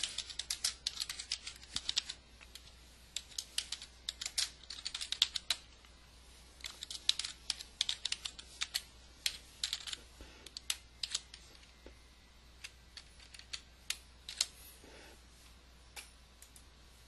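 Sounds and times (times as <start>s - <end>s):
computer keyboard typing: 0.0s - 5.8s, 6.6s - 11.7s, 12.6s - 14.5s.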